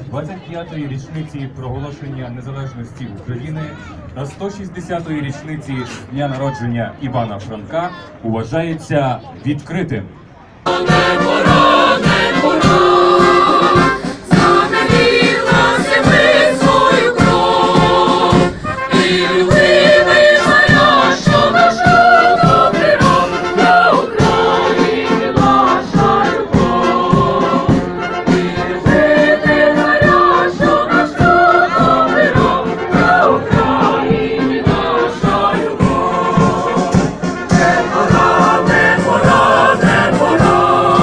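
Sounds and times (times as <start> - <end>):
voices singing along: 10.6 - 41.0
bass drum beating: 10.7 - 41.0
brass band playing: 10.7 - 41.0.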